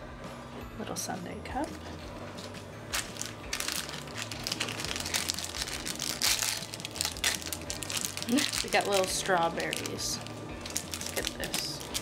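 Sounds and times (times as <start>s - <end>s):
plastic wrappers crinkling: 2.4s - 12.0s.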